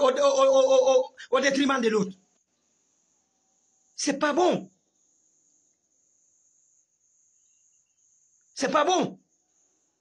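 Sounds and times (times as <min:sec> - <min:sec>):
crickets chirring: 0:00.0 - 0:10.0.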